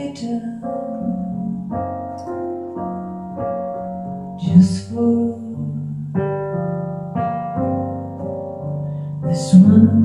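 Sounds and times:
woman singing: 0.0 - 2.1, 4.4 - 6.4, 9.2 - 10.0
electric keyboard chords: 0.0 - 10.0.

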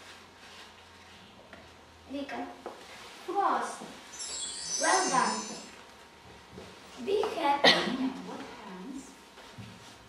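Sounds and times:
person speaking: 4.5 - 5.8.

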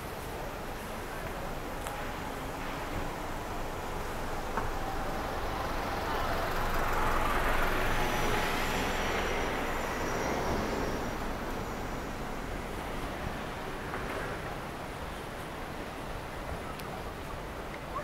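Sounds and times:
truck driving past slowly: 0.6 - 16.2.

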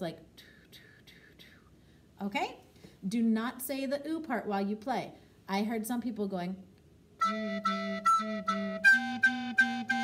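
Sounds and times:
recorder notes: 7.2 - 10.0.

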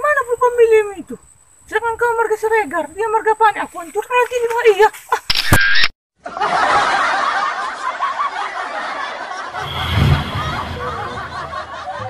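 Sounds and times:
dubbed laughter: 6.3 - 12.0
loud sound effect: 9.6 - 11.8.

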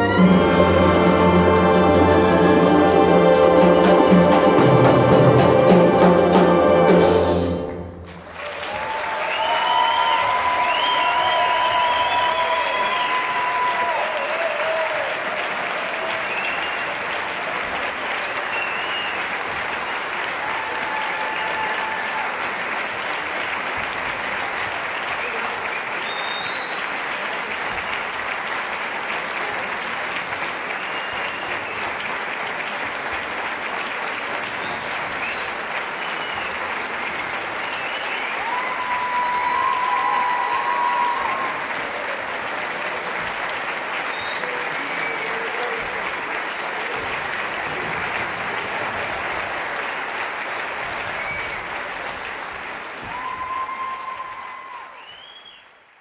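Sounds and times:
audience applauding: 0.0 - 56.0.

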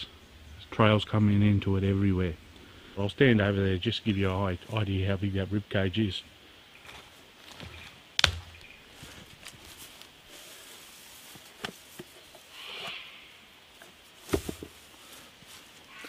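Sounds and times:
twigs snapping: 6.8 - 10.1
footsteps through grass and leaves: 6.8 - 16.0.

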